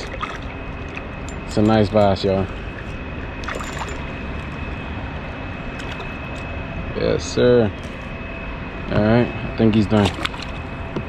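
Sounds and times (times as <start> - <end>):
fish splashing at the surface: 0.0 - 1.0, 10.0 - 10.5
creek water flowing: 0.0 - 1.6.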